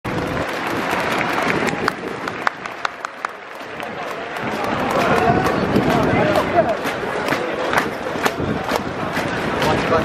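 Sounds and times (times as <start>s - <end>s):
crowd applauding: 0.1s - 10.0s
scattered single claps: 0.1s - 10.0s.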